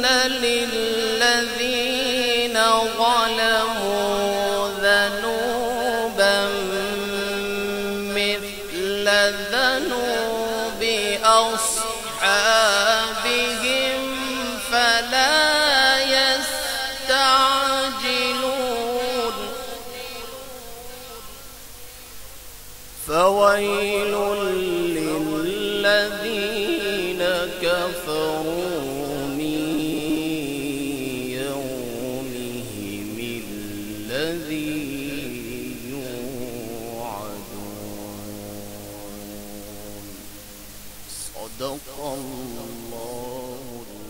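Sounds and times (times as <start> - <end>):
man reciting melodically: 0.0 - 21.4, 23.0 - 44.0
sound system hiss and hum: 0.0 - 44.0.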